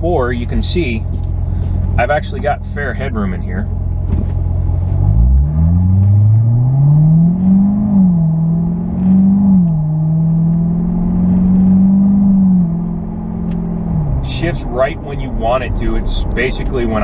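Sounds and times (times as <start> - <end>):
car engine accelerating: 0.0 - 17.0.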